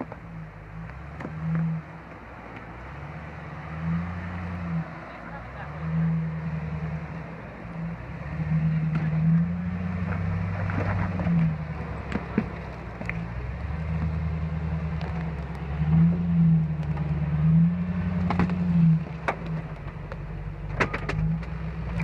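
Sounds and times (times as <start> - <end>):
car engine at low revs: 0.0 - 22.0.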